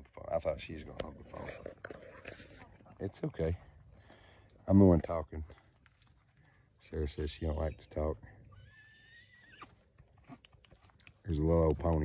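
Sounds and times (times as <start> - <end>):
faint horse whinny: 8.5 - 9.8.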